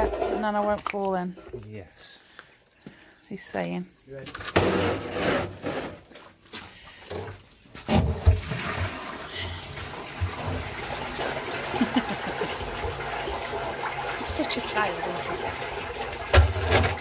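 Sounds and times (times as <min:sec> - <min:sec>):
water rushing in drain: 0:00.0 - 0:17.0.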